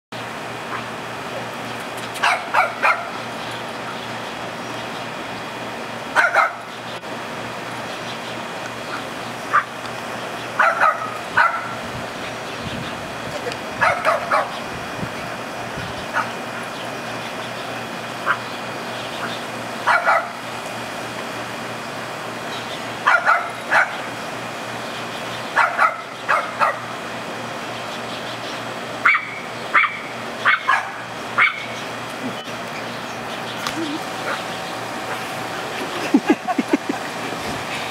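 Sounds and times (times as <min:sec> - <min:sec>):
low background hum: 0:00.2 - 0:37.9
small dog barking and yipping: 0:02.1 - 0:03.2, 0:06.1 - 0:06.7, 0:08.9 - 0:09.8, 0:10.5 - 0:11.8, 0:13.8 - 0:14.6, 0:16.0 - 0:16.4, 0:18.2 - 0:18.5, 0:19.2 - 0:20.4, 0:23.0 - 0:24.1, 0:25.5 - 0:26.9, 0:29.0 - 0:31.8, 0:33.7 - 0:35.3.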